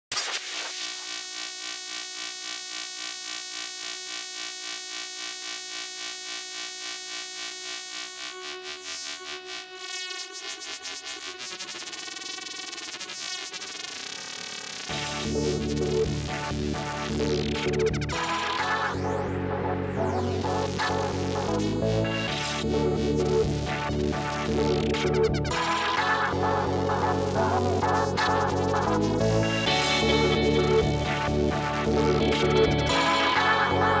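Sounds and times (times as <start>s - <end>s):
bass-heavy electronic music: 14.9s - 34.0s
pulsing synth pattern: 15.0s - 34.0s.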